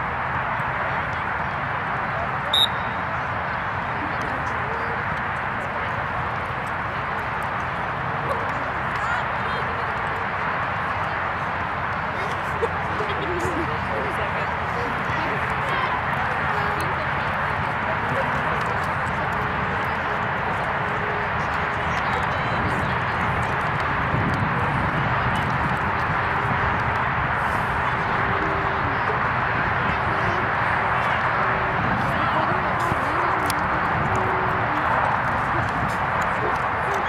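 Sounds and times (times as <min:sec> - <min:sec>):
indistinct voices of players: 0:03.7 - 0:37.0.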